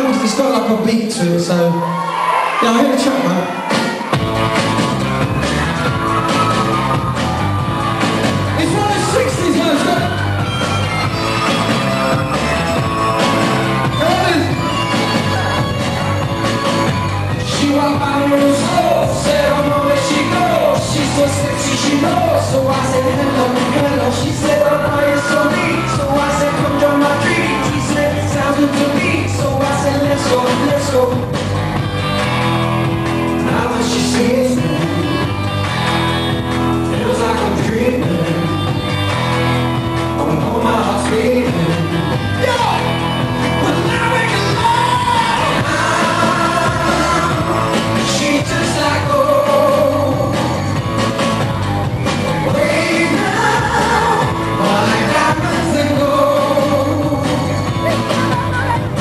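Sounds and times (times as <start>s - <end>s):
pop song with male singer: 4.9s - 59.0s.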